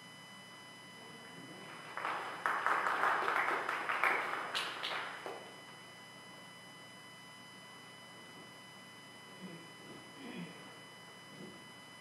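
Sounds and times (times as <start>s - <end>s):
congregation applauding: 1.7s - 5.5s.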